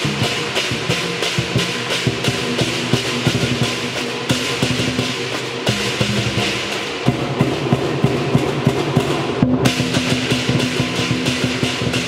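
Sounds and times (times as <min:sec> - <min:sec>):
hand cymbals crashing: 0:00.0 - 0:12.0
large drums beaten fast: 0:00.0 - 0:12.0.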